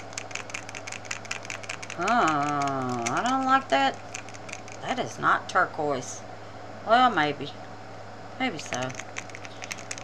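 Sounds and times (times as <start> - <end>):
low electrical hum: 0.0 - 10.0.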